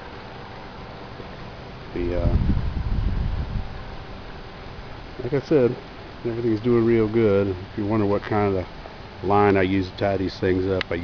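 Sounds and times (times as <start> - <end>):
faint outdoor hiss: 0.0 - 11.0
wind buffeting microphone: 2.0 - 4.3.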